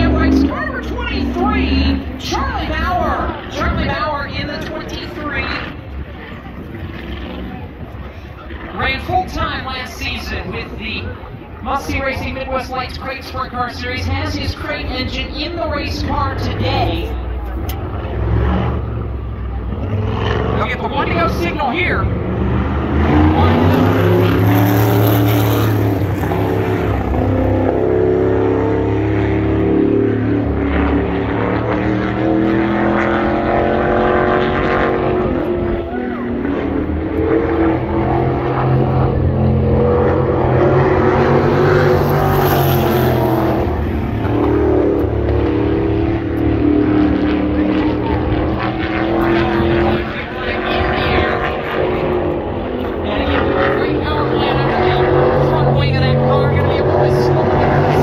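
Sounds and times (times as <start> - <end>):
race car engine running hard: 0.0 - 58.0.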